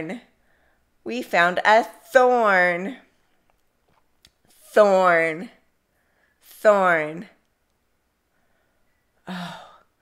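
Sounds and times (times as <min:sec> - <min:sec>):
woman sighing: 0:09.2 - 0:09.9.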